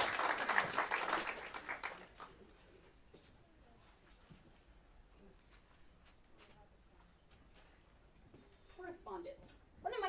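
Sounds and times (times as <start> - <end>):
woman speaking: 8.8 - 10.0.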